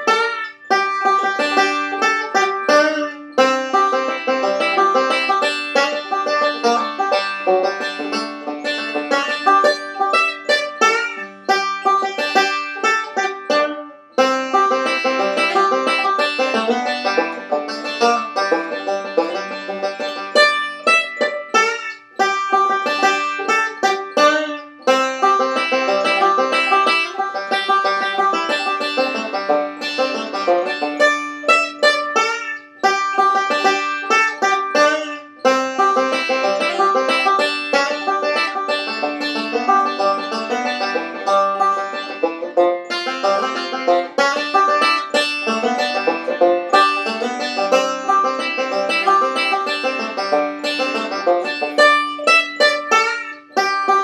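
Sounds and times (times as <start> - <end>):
banjo picking bluegrass tune: 0.0 - 54.0.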